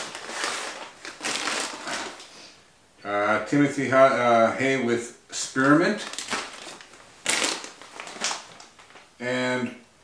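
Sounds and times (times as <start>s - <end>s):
plastic bag crinkling: 0.0s - 2.3s, 5.6s - 9.1s.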